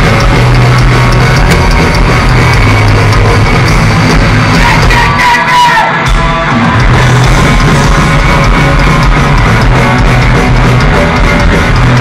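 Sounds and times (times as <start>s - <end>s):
punk band playing loudly: 0.0s - 12.0s.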